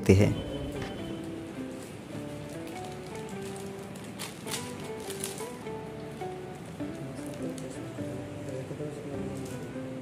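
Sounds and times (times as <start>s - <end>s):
soft background music: 0.0s - 10.0s
plastic packaging crinkling: 0.4s - 10.0s
plastic tearing: 1.0s - 10.0s.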